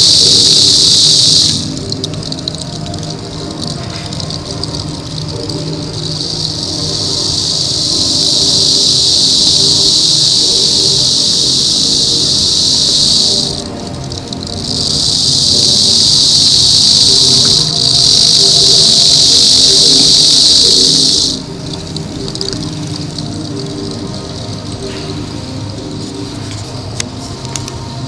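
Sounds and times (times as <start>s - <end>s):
high-pitched insect-like buzz: 0.0s - 28.0s
soft background music: 0.0s - 28.0s.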